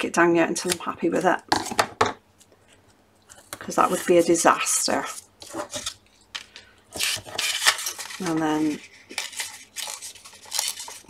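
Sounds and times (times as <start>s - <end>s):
paper rustling and scraping: 2.7s - 6.3s, 6.9s - 11.0s.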